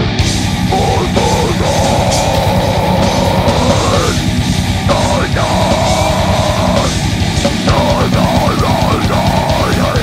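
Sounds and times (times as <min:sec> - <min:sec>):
distorted electric guitar: 0:00.0 - 0:10.0
fast dense drumming: 0:00.0 - 0:10.0.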